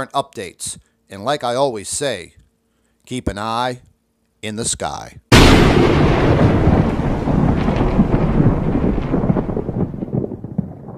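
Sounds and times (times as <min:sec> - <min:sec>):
loud crackling rumble: 0:05.3 - 0:10.9.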